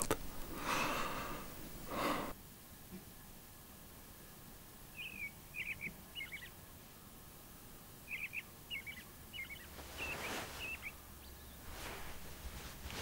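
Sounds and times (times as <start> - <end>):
faint bird chirping: 4.2 - 12.6
soft rustle: 9.5 - 13.0.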